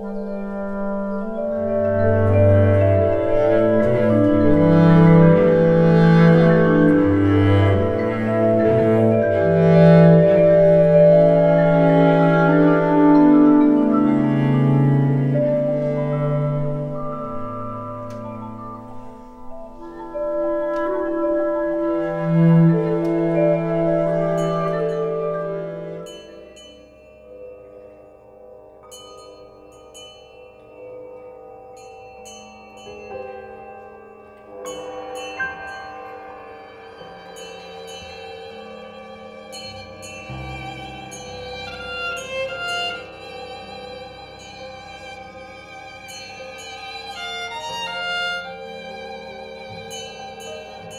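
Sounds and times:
violin with vibrato: 0:00.0 - 0:26.2, 0:36.9 - 0:50.9
clarinet sustained notes: 0:00.0 - 0:26.5
cello sustained notes: 0:00.0 - 0:26.6, 0:34.4 - 0:50.9.

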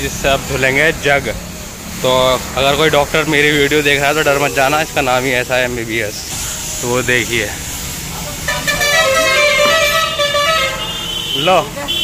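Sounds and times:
vehicle horn: 0:08.5 - 0:12.0.

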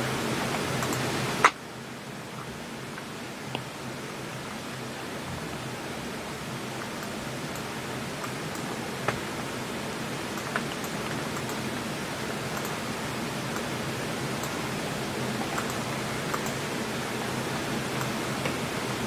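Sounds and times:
microphone hiss: 0:00.0 - 0:19.0
light ticks: 0:12.6 - 0:12.8.

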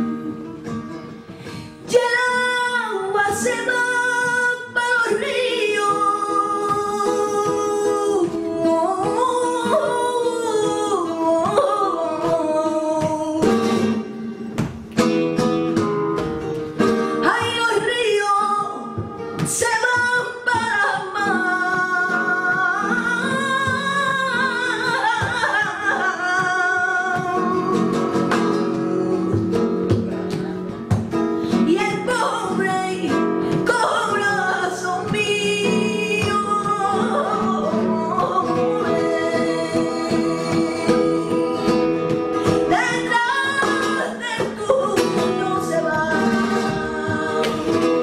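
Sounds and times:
flamenco guitar: 0:00.0 - 0:48.0
woman singing flamenco: 0:00.0 - 0:48.0.

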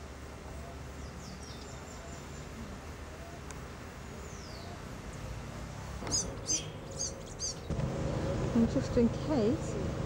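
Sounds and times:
small bird chirping: 0:00.6 - 0:02.6, 0:06.0 - 0:07.7.

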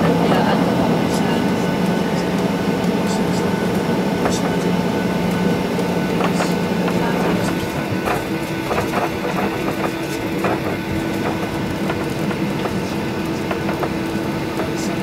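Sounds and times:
aircraft engine hum: 0:00.0 - 0:15.0.

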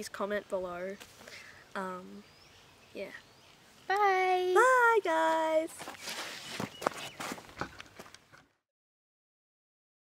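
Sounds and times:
scuffing footsteps: 0:05.2 - 0:08.4
rustling: 0:05.4 - 0:08.5.

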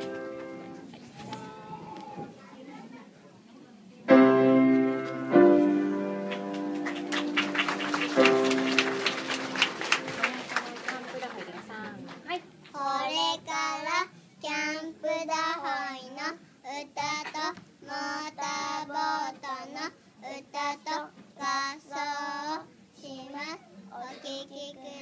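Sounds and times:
young children singing: 0:12.7 - 0:25.0.

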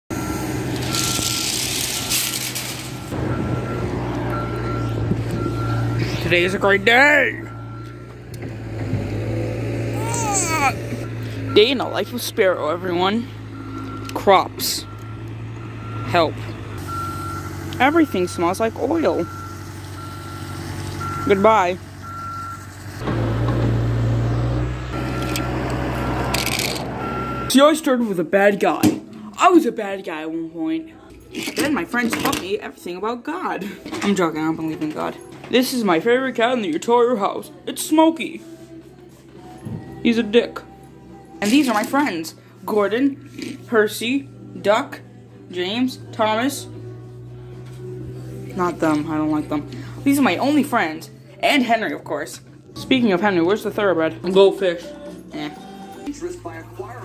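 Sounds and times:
reversing alarm beeps: 0:00.1 - 0:01.4, 0:03.0 - 0:08.2, 0:11.0 - 0:22.7, 0:25.0 - 0:25.6, 0:27.0 - 0:27.6
low engine drone: 0:40.7 - 0:51.4.

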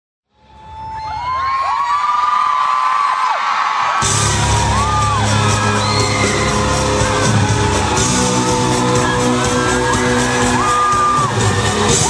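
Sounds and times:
crowd screaming and whooping: 0:00.3 - 0:12.0
band playing with heavy bass beat: 0:04.0 - 0:12.0.

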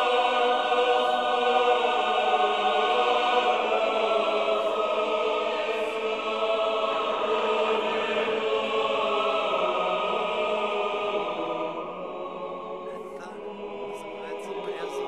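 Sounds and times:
choir singing sustained chords: 0:00.0 - 0:15.0.

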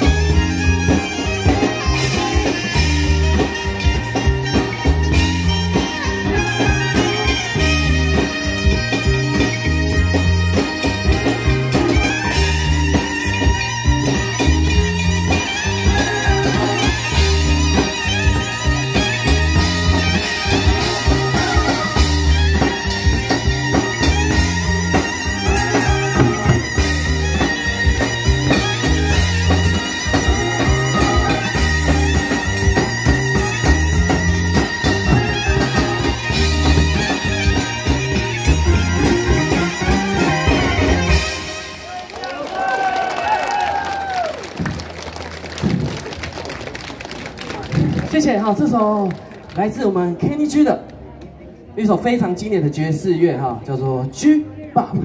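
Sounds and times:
bass line: 0:00.0 - 0:42.0
drum kit: 0:00.0 - 0:44.9
wind instrument lead melody: 0:00.0 - 0:46.6
band music: 0:00.0 - 0:55.0
keyboard: 0:00.0 - 0:55.0
audience clapping: 0:41.9 - 0:49.7.

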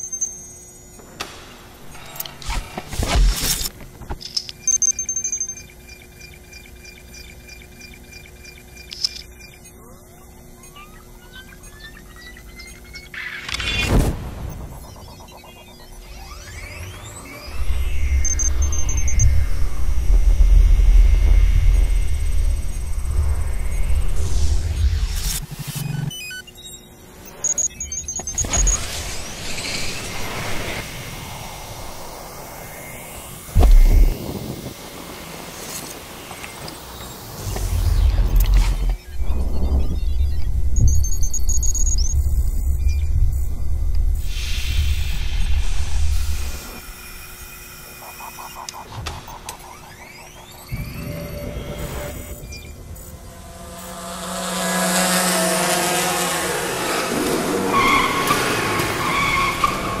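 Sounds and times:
heavy low rumble: 0:17.6 - 0:25.1, 0:50.7 - 0:56.2
sweeping whooshes: 0:48.8 - 0:59.0
engine revving: 0:50.7 - 1:00.0
tyre squeal: 0:57.3 - 1:00.0.

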